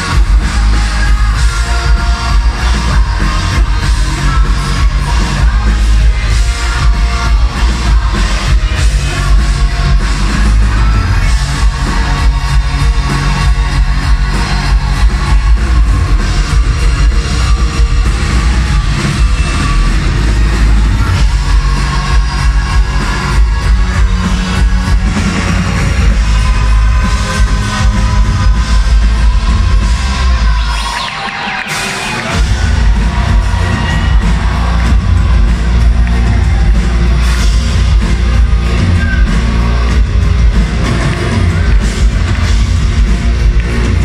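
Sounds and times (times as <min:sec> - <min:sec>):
electro-rock band playing live: 0:00.0 - 0:44.0.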